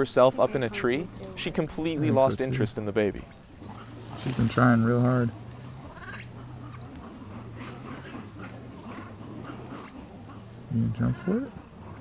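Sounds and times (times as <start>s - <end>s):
monkey squealing calls: 0.6s - 12.0s.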